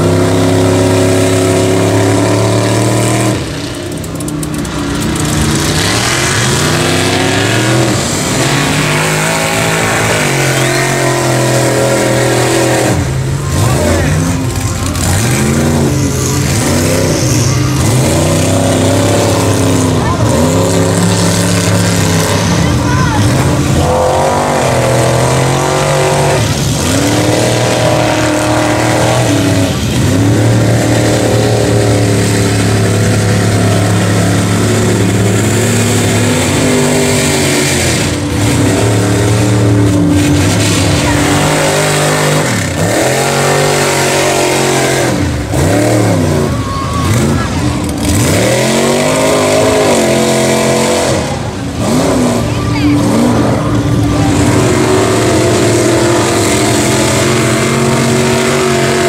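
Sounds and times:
truck engine revving: 0:00.0 - 0:59.0.

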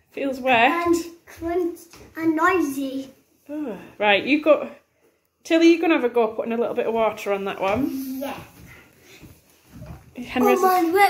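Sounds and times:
child saying yeah: 0:10.4 - 0:11.0.

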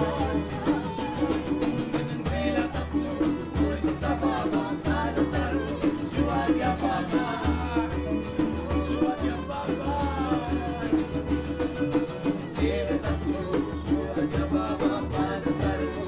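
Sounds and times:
bowed violin: 0:00.0 - 0:16.0
hand drum beat: 0:00.0 - 0:16.0
several voices singing together: 0:00.0 - 0:16.0
strummed acoustic guitar: 0:00.0 - 0:16.0.

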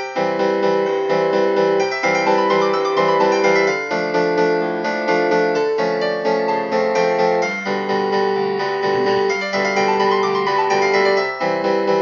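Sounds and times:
piano melody: 0:00.0 - 0:12.0.

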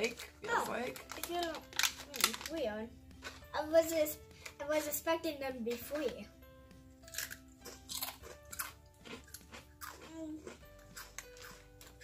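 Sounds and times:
chips crunching while chewed: 0:00.0 - 0:02.6, 0:07.0 - 0:12.0
soft background music: 0:00.0 - 0:12.0.

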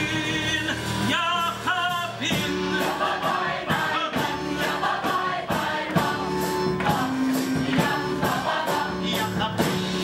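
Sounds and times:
instrumental accompaniment with beat: 0:00.0 - 0:10.0
chorus singing: 0:02.3 - 0:10.0.

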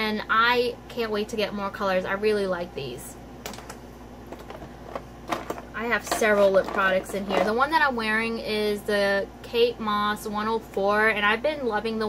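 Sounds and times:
air conditioner hum: 0:00.0 - 0:12.0.

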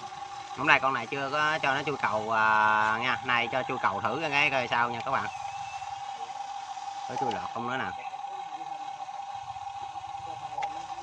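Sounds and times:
faint higher whine: 0:00.0 - 0:11.0
small electric motor whine: 0:00.0 - 0:11.0.

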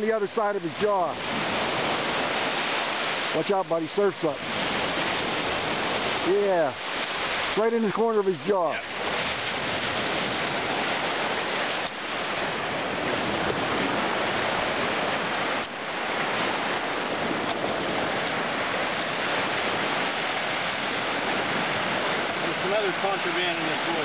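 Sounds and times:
surf breaking on gravel shore: 0:00.0 - 0:24.0.

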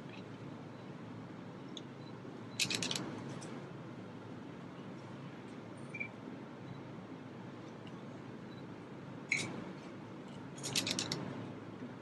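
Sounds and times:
low room hum: 0:00.0 - 0:12.0
camera shutter burst: 0:02.6 - 0:03.0, 0:10.6 - 0:11.2.

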